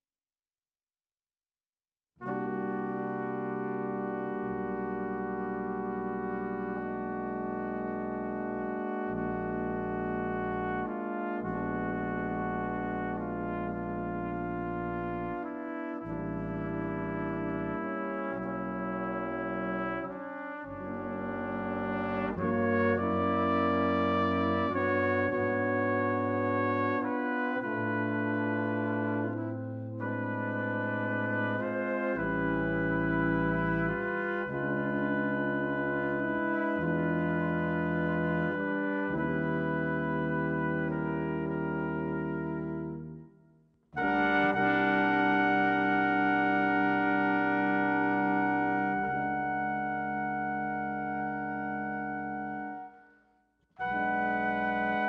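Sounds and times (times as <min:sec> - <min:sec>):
brass quintet playing chords: 0:02.2 - 0:43.4, 0:44.0 - 0:53.1, 0:53.8 - 0:55.0.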